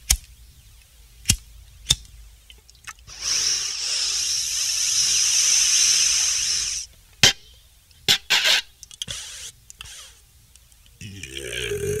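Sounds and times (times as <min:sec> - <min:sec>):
high-pitched whirring: 0:03.1 - 0:06.9.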